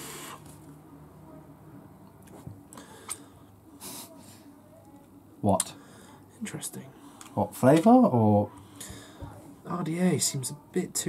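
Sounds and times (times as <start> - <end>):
faint airy draw through vape: 0.0 - 0.7.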